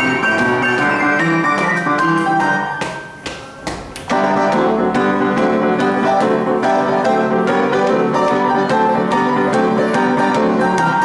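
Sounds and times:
boogie-woogie piano playing: 0.0 - 11.0.

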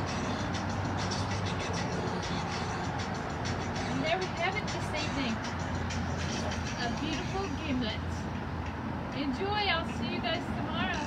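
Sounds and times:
cars passing: 0.0 - 11.0
music playing: 0.0 - 11.0.

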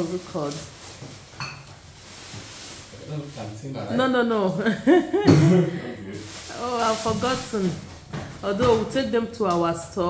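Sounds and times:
groceries handling noise: 0.0 - 3.8, 6.2 - 8.9.

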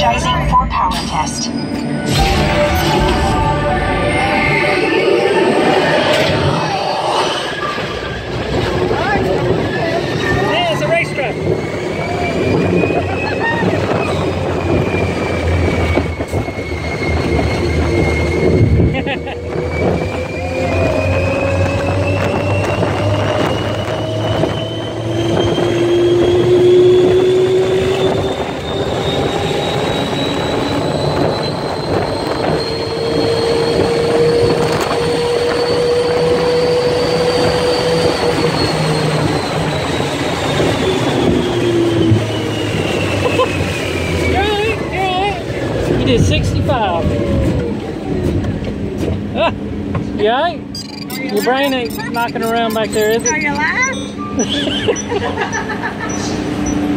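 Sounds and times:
ride vehicle motor whine: 50.6 - 56.9.

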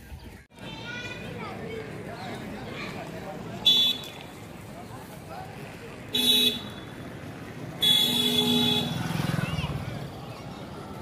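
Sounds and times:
vehicle horn honking: 3.6 - 4.1, 6.1 - 6.9, 7.8 - 9.1.

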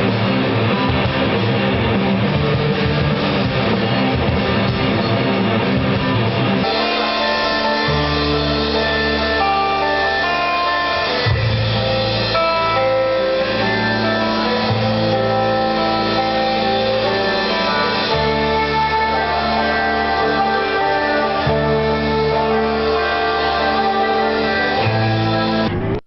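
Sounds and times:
amplified rock guitars: 0.0 - 26.0
long held bass notes: 0.0 - 26.0.

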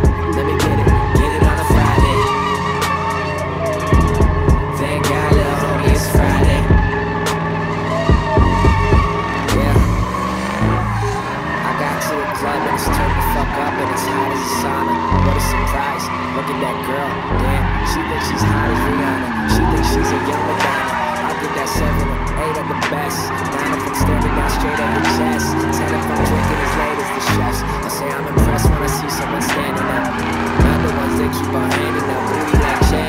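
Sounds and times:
car engine revving: 0.0 - 33.0
car tires squealing: 0.0 - 33.0
crowd voices: 0.0 - 33.0
hip-hop music: 0.0 - 33.0.

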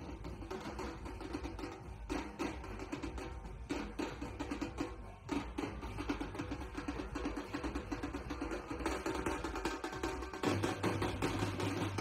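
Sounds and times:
fast drumming: 0.0 - 12.0.

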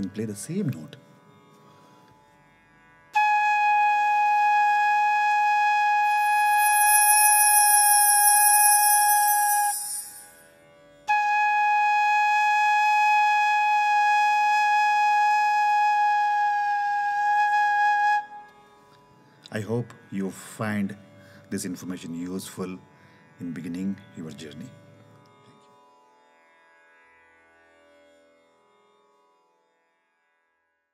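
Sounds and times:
bamboo flute long note: 3.2 - 10.5, 11.1 - 18.6.

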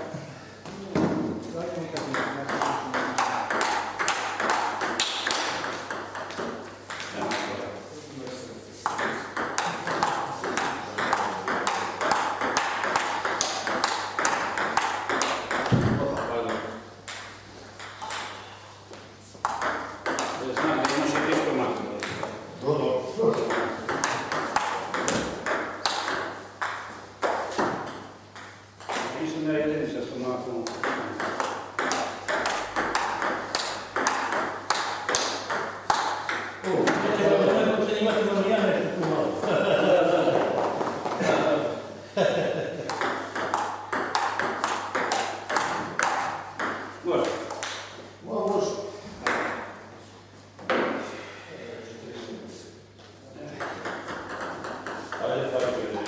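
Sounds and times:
table tennis ball bouncing on table: 1.9 - 7.6, 8.8 - 18.4, 19.4 - 22.4, 23.2 - 29.2, 30.6 - 39.9, 42.9 - 48.0, 49.2 - 49.7, 53.6 - 56.0
table tennis ball clicking off paddles: 2.0 - 7.5, 8.9 - 18.4, 23.4 - 29.1, 30.7 - 37.0, 42.9 - 47.9, 53.6 - 55.8.

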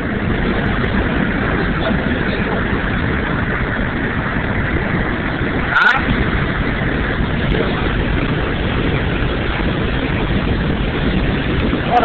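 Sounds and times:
pickup truck engine and road noise: 0.0 - 12.0.

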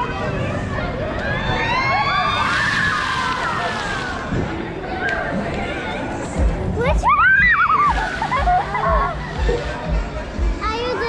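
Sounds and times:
crowd noise: 0.0 - 11.0
children shrieking: 1.3 - 4.3, 7.0 - 9.5
fountain jets hissing: 2.0 - 4.9, 6.7 - 11.0.

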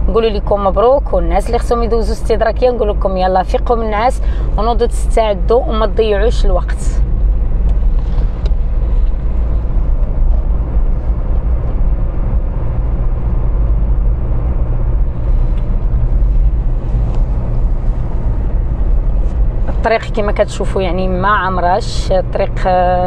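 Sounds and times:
car driving inside cabin rumble: 0.0 - 23.0.

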